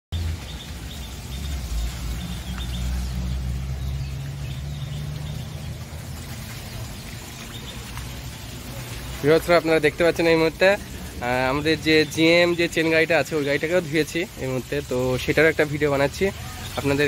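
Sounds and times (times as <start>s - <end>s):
birds chirping faintly: 0.1s - 17.0s.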